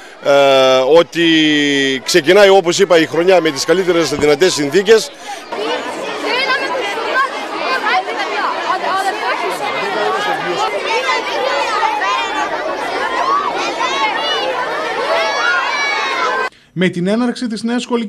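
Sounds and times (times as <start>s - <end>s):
children chattering and calling out: 0.0s - 16.5s.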